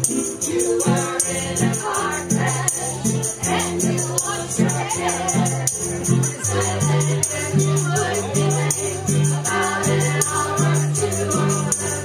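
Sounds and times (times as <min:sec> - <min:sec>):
acoustic string band playing: 0:00.0 - 0:12.0
voices singing together: 0:00.0 - 0:12.0.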